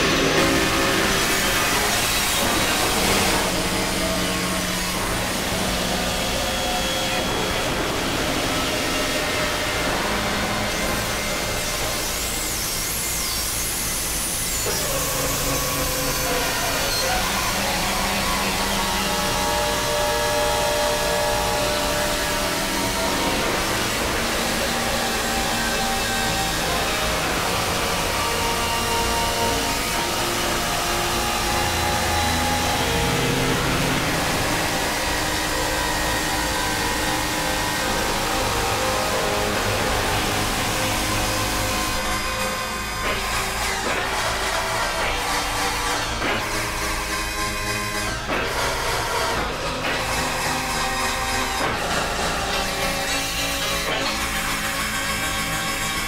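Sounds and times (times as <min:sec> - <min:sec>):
electronic drone music: 0:00.0 - 0:56.0.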